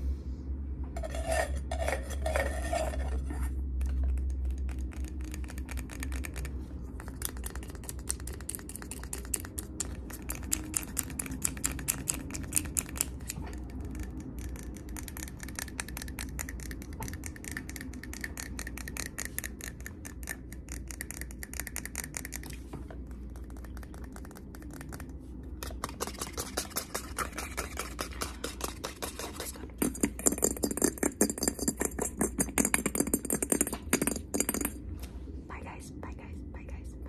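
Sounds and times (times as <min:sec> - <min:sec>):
steady low hum: 0:00.0 - 0:37.0
fingernails tapping on glass jar: 0:25.6 - 0:34.8.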